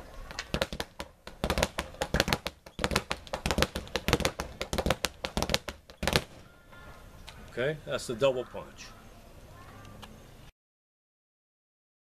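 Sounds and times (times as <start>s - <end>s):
speed bag rattling: 0.5s - 6.4s.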